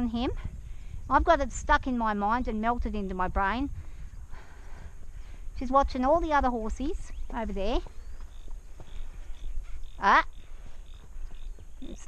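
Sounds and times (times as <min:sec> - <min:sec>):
wind rumble on microphone: 0:00.0 - 0:12.0
hoof steps on dirt: 0:04.9 - 0:12.0.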